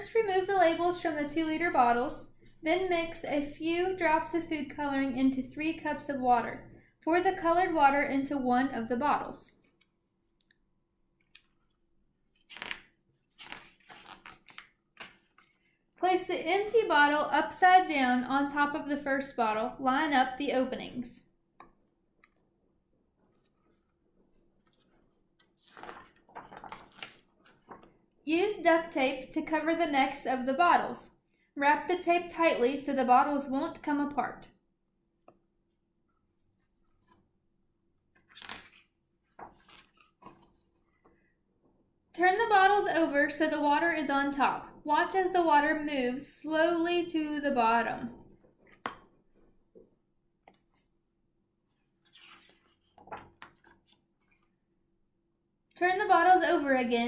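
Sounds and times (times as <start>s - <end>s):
book pages turning: 11.2s - 15.8s, 23.2s - 28.0s, 36.5s - 37.3s, 38.1s - 41.2s, 48.5s - 49.5s, 51.7s - 54.6s
crackling paper: 12.3s - 15.7s, 24.6s - 28.0s, 38.2s - 40.7s, 52.0s - 54.5s.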